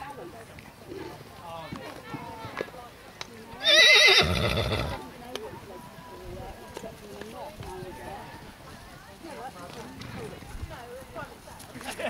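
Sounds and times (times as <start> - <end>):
faint hoof clicks: 0.0 - 12.0
horse whinnying: 3.6 - 5.0.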